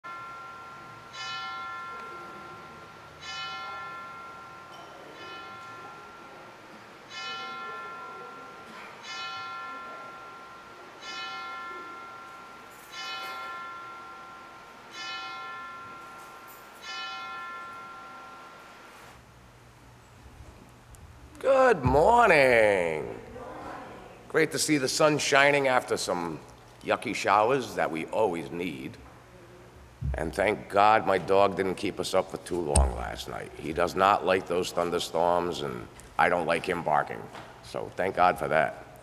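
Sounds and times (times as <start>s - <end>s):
church bell tolling: 0.0s - 6.3s, 7.1s - 18.9s, 32.7s - 33.6s.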